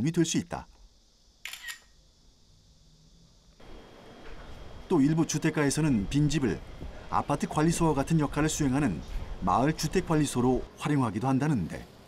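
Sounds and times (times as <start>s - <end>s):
camera shutter click: 1.4s - 1.9s.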